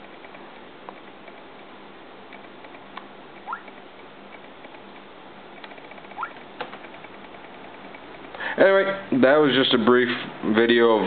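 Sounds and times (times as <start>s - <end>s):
steady low hiss: 0.0s - 11.0s
short rising squeaks: 6.0s - 6.4s.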